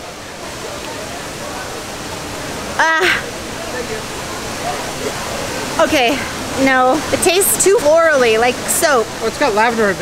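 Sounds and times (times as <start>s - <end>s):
faint distant voices: 0.0s - 10.0s
steady rushing noise: 0.0s - 10.0s.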